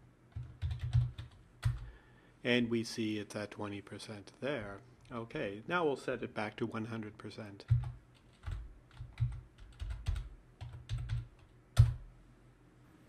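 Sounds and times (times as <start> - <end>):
typing on computer keyboard: 0.3 - 1.9, 7.7 - 12.0.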